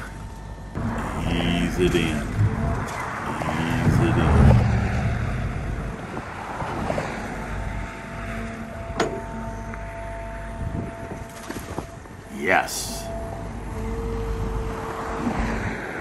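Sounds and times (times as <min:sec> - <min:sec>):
excavator engine under load: 0:00.0 - 0:16.0
hydraulic whine: 0:00.0 - 0:16.0.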